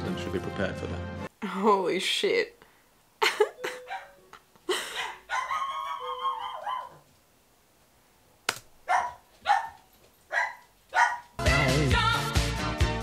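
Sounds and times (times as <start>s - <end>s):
dog barking: 3.8s - 4.2s, 4.9s - 7.0s, 8.8s - 11.4s.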